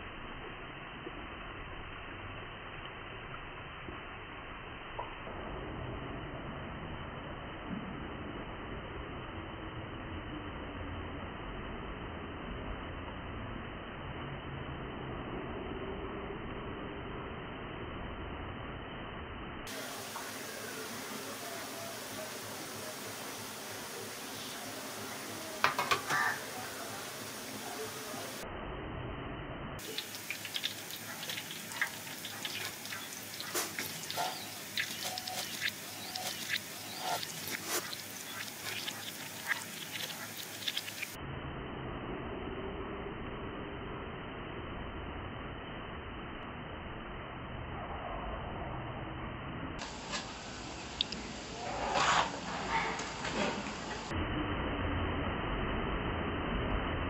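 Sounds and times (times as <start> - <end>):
frying in hot oil sizzle: 0.0 - 16.2, 19.7 - 28.4, 29.8 - 41.2.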